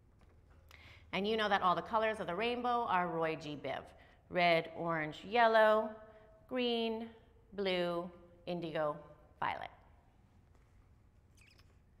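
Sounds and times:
faint high-pitched squeak: 11.3 - 12.0.

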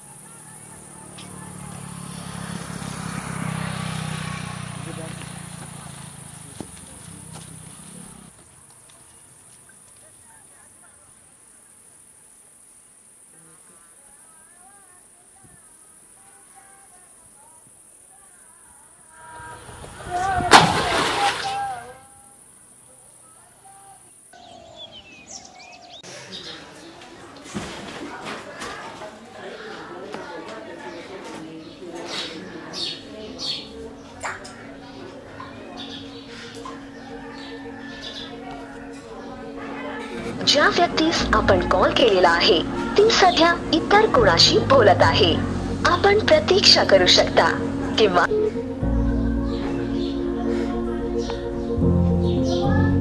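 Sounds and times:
motor vehicle passing by: 0.0 - 8.5, 19.1 - 21.7, 32.3 - 52.2.

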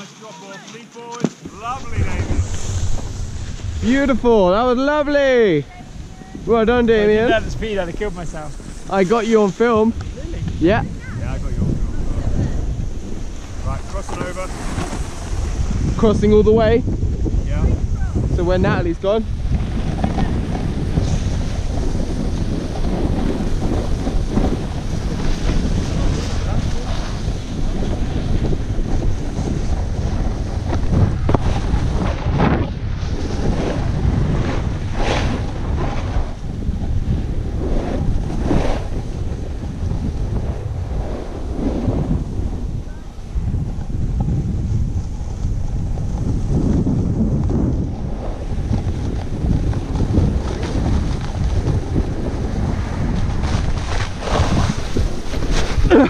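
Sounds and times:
skis sliding over packed snow: 0.0 - 16.8, 17.4 - 56.0
wind buffeting microphone: 1.4 - 56.0.

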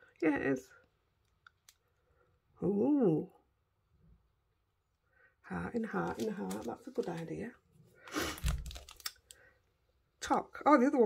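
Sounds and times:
plastic packets crinkling: 5.8 - 7.5, 8.2 - 9.5.

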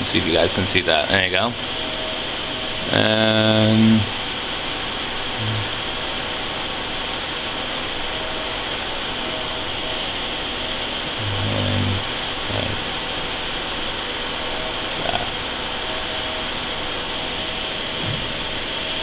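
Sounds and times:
man humming: 5.4 - 5.8, 11.2 - 12.8, 18.0 - 18.4.

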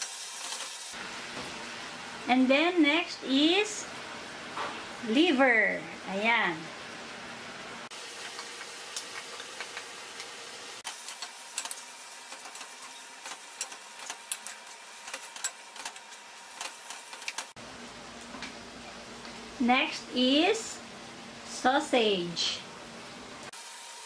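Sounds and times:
meat sizzling in oil: 0.0 - 2.3, 7.9 - 17.6.

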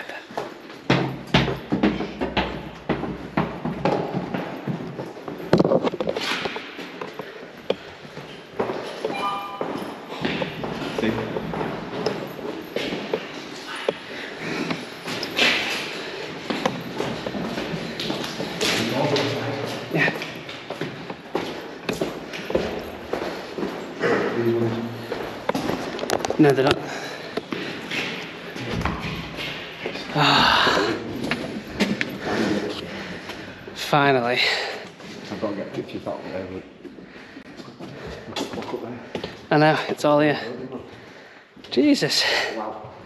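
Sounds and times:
footsteps on stairs and hard floor: 0.0 - 41.7
short high ping: 9.1 - 10.0.

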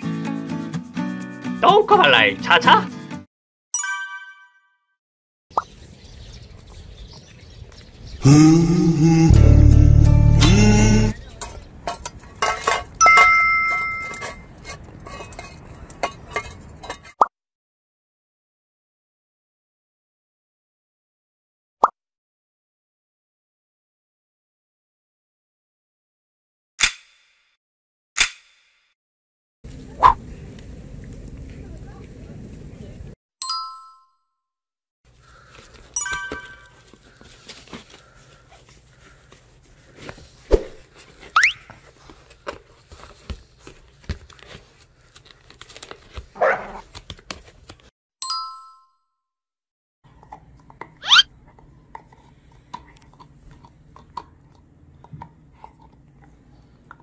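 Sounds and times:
puppy barking: 46.4 - 46.8.

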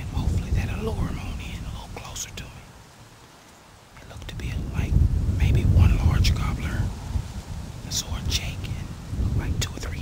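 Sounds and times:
man whispering: 0.0 - 2.8, 4.0 - 6.9, 7.8 - 10.0.

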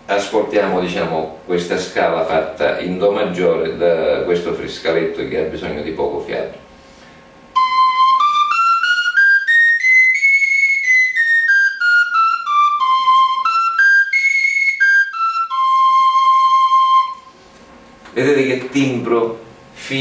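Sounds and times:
fipple flute playing a scale: 7.5 - 17.4.

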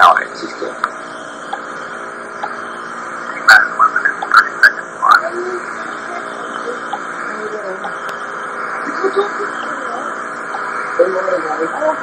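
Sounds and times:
steady tape hiss: 0.0 - 12.0.

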